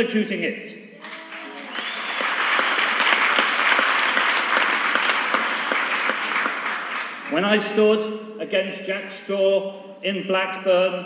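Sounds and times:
audience applauding: 1.0s - 7.4s.

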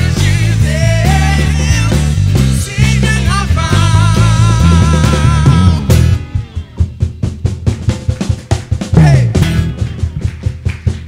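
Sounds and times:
bass drum: 0.0s - 11.0s
full band playing loudly: 0.0s - 11.0s.

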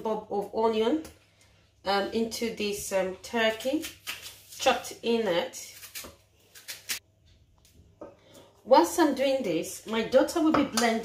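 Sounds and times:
knife slicing onion: 3.4s - 7.0s.

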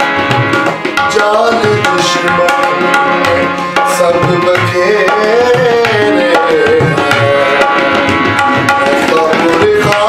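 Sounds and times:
harmonium chords: 0.0s - 10.0s
tabla strokes: 0.0s - 10.0s
man singing: 1.0s - 10.0s.

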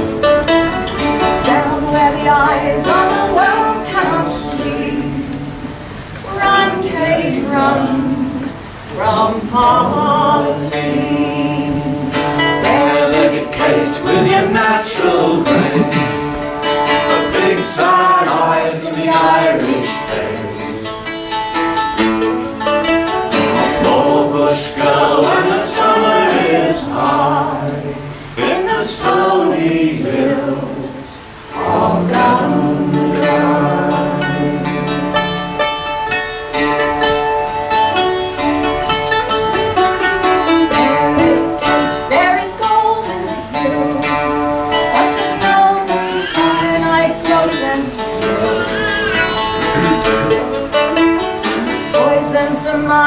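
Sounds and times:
acoustic guitar: 0.0s - 53.0s
mandolin: 0.0s - 53.0s
woman and man singing: 1.2s - 21.2s, 23.4s - 35.7s, 40.5s - 50.6s, 51.4s - 53.0s.

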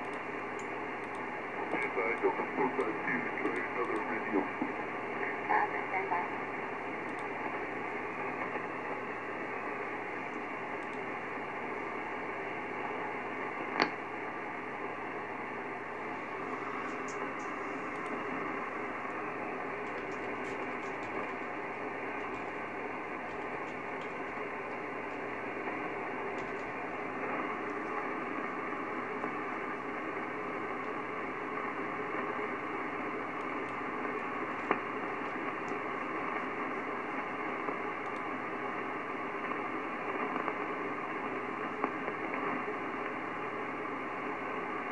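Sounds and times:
radio receiver hiss and static: 0.0s - 44.9s
sharp radio crackle: 0.1s - 44.9s.

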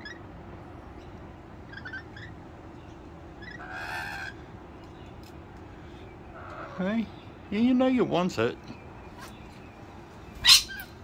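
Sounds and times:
lorikeets chirping: 0.0s - 0.3s, 0.9s - 11.0s
low steady background noise: 0.0s - 11.0s
harsh bird squawk: 1.7s - 2.4s, 3.4s - 4.4s, 6.3s - 7.1s, 10.3s - 11.0s.

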